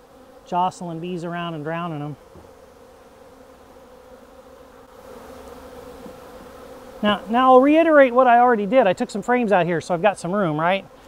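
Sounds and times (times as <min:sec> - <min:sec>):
bees buzzing: 0:00.0 - 0:11.0.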